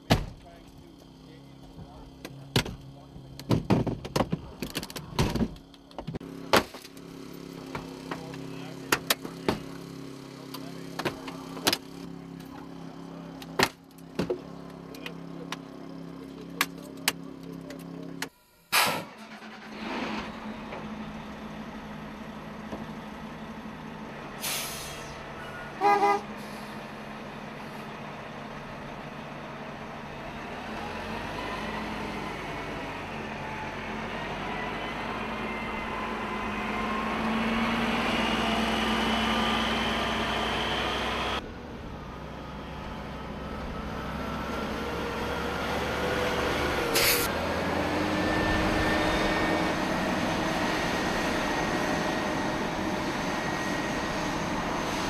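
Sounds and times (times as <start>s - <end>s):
fire truck engine running: 0.0s - 55.0s.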